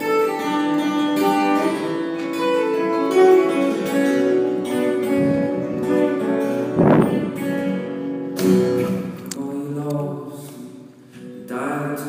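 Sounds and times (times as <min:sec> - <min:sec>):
acoustic guitar notes and chords: 0:00.0 - 0:12.0
sharp guitar strike: 0:01.1 - 0:09.4.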